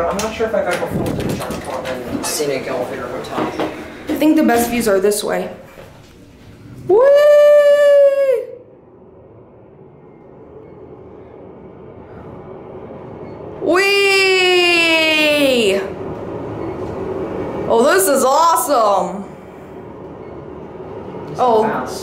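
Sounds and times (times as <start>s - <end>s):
elevator running noise: 0.0s - 22.0s
man whooping: 6.9s - 8.7s.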